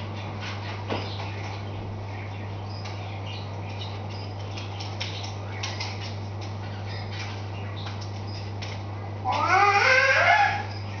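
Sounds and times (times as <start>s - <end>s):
loud high-pitched call: 9.2s - 10.7s.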